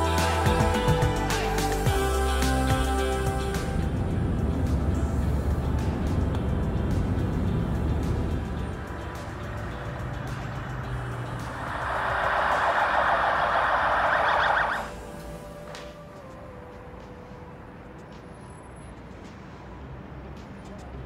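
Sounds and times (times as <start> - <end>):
background music: 0.0 - 21.0
car road noise: 0.0 - 21.0.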